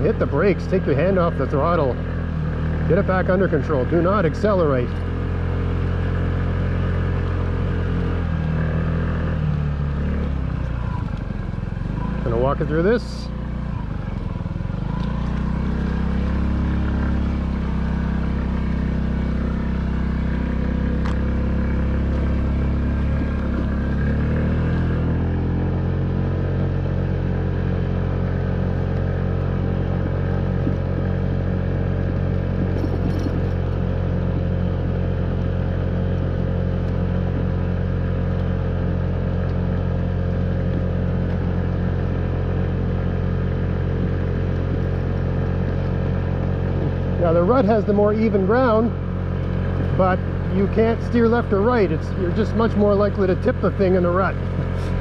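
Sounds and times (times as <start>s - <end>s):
scooter engine running: 0.0s - 55.0s.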